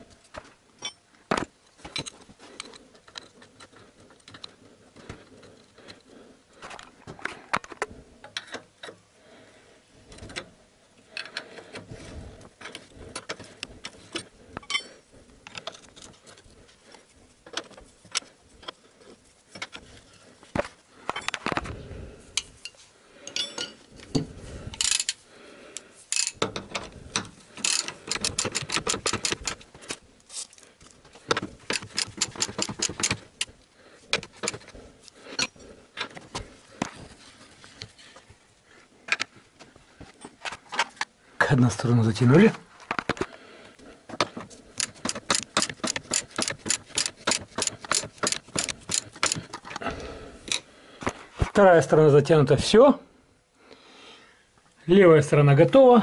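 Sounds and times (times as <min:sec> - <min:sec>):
metal tools clinking and knocking: 0:00.8 - 0:01.0, 0:14.1 - 0:16.4, 0:22.4 - 0:25.2, 0:26.1 - 0:29.6, 0:34.2 - 0:34.7, 0:44.8 - 0:49.8
ratchet wrench clicking: 0:26.1 - 0:26.4, 0:27.6 - 0:29.6, 0:31.7 - 0:33.5, 0:44.8 - 0:49.4.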